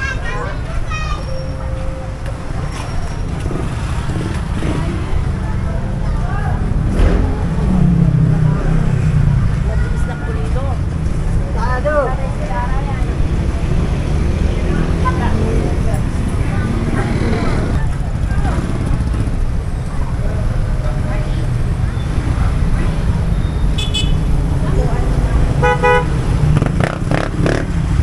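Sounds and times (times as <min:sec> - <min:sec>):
motorcycles: 0:00.0 - 0:28.0
passers-by talking: 0:00.0 - 0:28.0
road traffic rumble: 0:00.0 - 0:28.0
vehicle passing close: 0:24.2 - 0:28.0.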